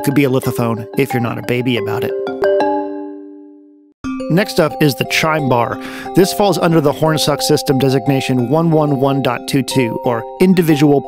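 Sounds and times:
stone marimba notes: 0.0s - 3.3s, 4.1s - 11.0s.

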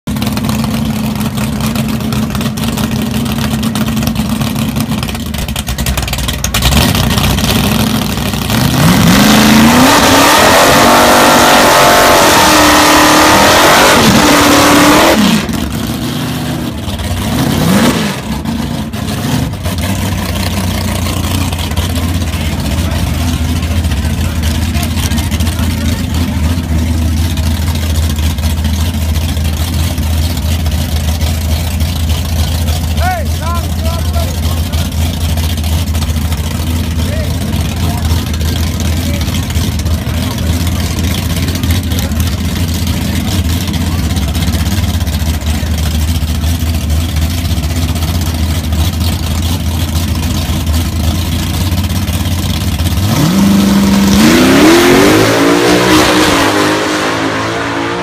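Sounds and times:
car engine revving and idling: 0.0s - 58.0s.

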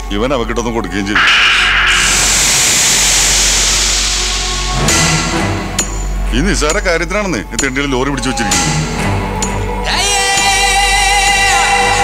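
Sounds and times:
loud rushing hiss: 1.2s - 6.6s.

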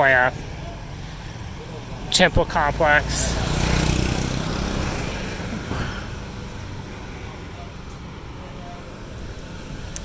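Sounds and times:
road noise: 0.0s - 10.0s
motorbike engine passing: 0.6s - 7.6s.

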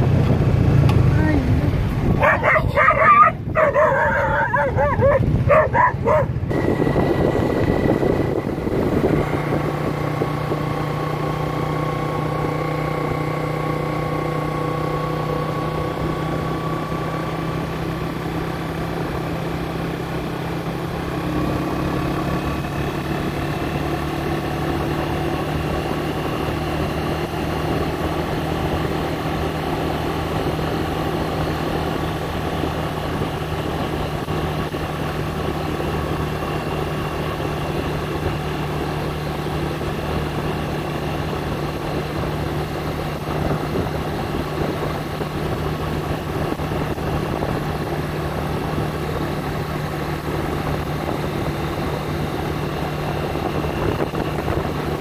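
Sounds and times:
vehicle engine running steadily: 0.0s - 55.0s.

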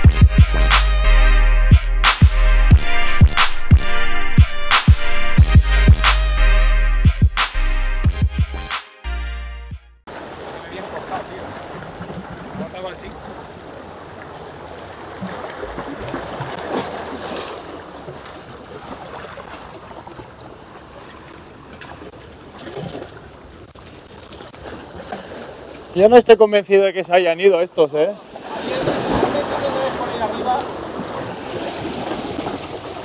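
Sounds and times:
sea water splashing against concrete: 10.1s - 26.0s, 28.2s - 33.0s.

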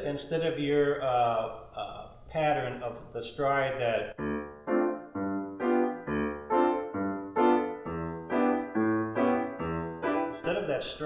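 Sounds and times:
stride piano playing: 4.0s - 11.0s.

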